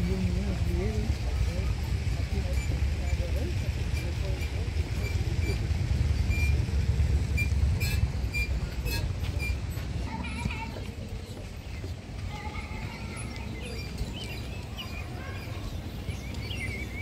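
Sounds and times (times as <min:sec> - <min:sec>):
faint voices: 0:00.0 - 0:17.0.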